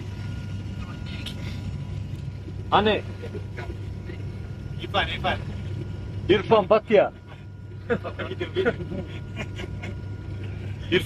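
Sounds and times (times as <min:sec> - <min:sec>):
aircraft cabin drone: 0:00.0 - 0:11.0
people talking: 0:04.8 - 0:05.6, 0:06.3 - 0:07.2.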